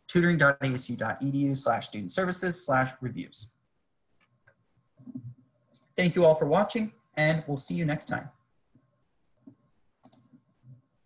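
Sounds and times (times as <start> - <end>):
computer mouse clicks: 4.2 - 6.0, 8.7 - 10.9.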